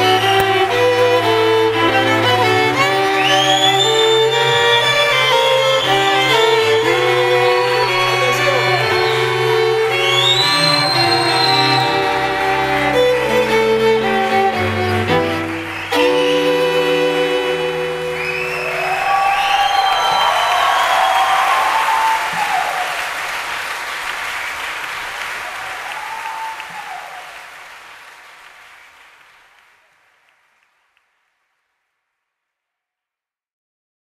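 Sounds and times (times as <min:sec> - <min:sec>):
string quartet held chord: 0:00.0 - 0:18.6
audience applauding and cheering: 0:00.0 - 0:31.2.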